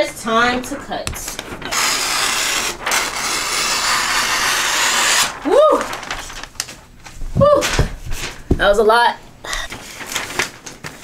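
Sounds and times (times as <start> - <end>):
scissors cutting wrapping paper: 1.1 - 6.5.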